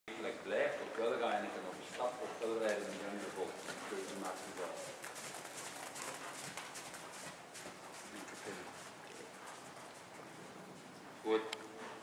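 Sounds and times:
horse hoofbeats on sand: 1.3s - 11.3s.

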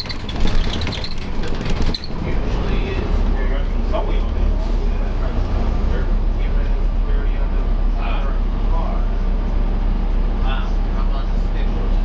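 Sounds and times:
bus body rattles and clicks: 0.0s - 6.4s
bus diesel engine rumble: 0.0s - 12.0s.

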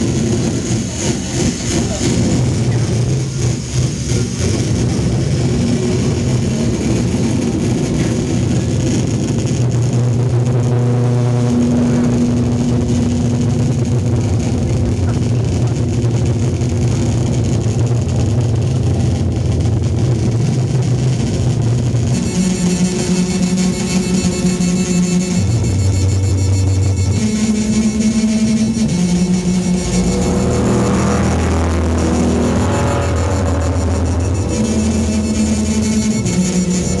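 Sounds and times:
electric guitar droning: 0.0s - 37.0s.

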